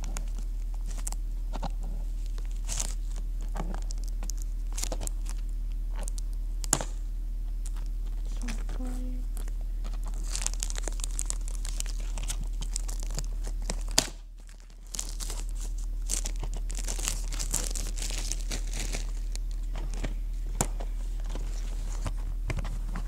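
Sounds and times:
low steady hum: 0:00.0 - 0:23.0
packaging crinkling and tearing: 0:00.0 - 0:23.0.

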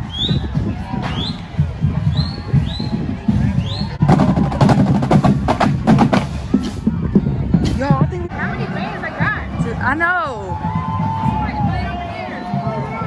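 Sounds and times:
music with drums: 0:00.0 - 0:08.3
rapid sharp drum strikes: 0:03.4 - 0:07.0.

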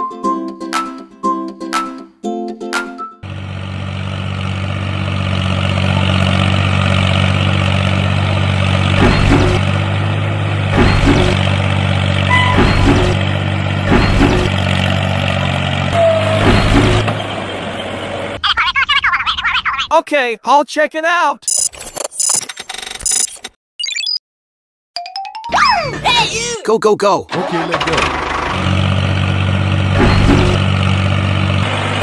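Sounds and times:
tractor engine running: 0:03.2 - 0:18.4, 0:27.3 - 0:32.0.

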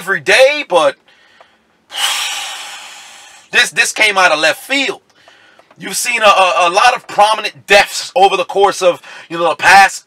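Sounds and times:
man breathing out heavily: 0:01.1 - 0:01.7, 0:09.0 - 0:09.3.

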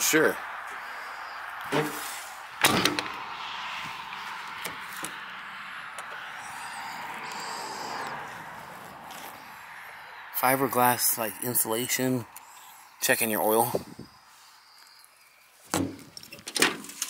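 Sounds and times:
metal door clunk: 0:02.6 - 0:03.2.

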